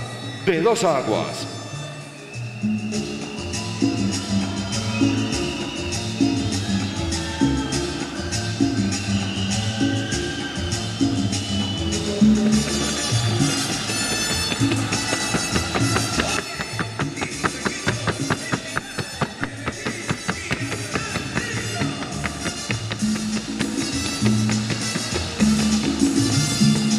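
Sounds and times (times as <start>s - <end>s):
upbeat music with drum kit: 2.7s - 26.9s
quick sharp taps: 13.6s - 25.4s.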